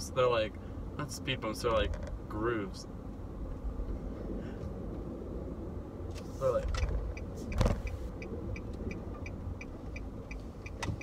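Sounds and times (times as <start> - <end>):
car interior road and engine noise: 0.0 - 11.0.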